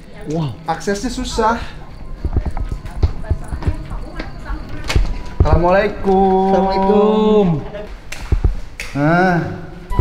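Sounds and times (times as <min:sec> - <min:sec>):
footsteps on hard floor: 0:02.0 - 0:06.9.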